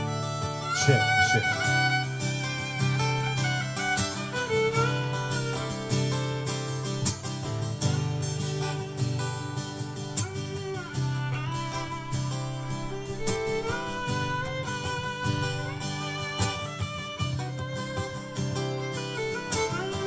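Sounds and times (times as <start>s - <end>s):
fiddle playing gliding melody: 0.0s - 20.0s
strummed guitar: 0.0s - 20.0s.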